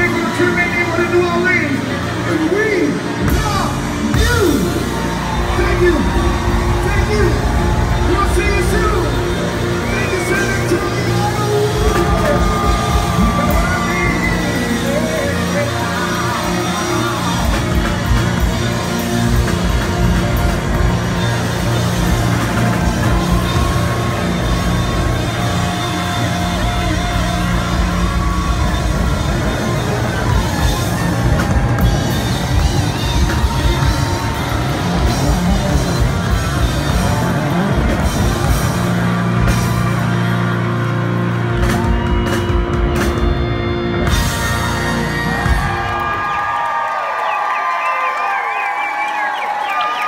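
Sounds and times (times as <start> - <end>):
funk band playing: 0.0 - 46.6
crowd cheering and whooping: 0.0 - 50.0
electric bass guitar: 3.0 - 46.0
drum kit: 3.0 - 46.6.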